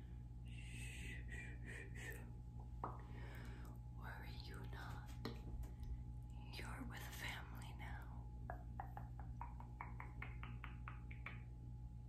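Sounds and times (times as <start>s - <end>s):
faint low hum: 0.0s - 12.0s
woman whispering softly: 4.0s - 5.3s, 6.3s - 8.2s.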